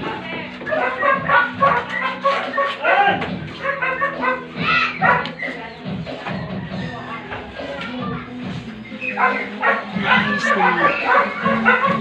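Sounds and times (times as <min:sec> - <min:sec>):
background music: 0:00.0 - 0:12.0
dog barking: 0:00.7 - 0:05.5, 0:09.0 - 0:12.0.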